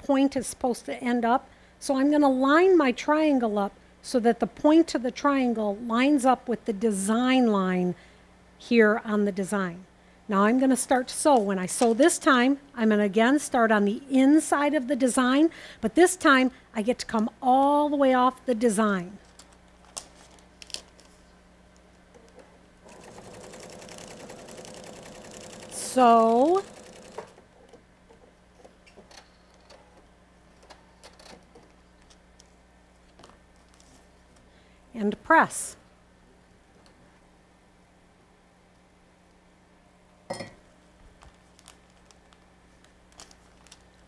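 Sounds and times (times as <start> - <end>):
paper and fabric handling clicks: 19.2 - 21.2, 41.2 - 44.0
sewing machine stitching: 22.9 - 27.4.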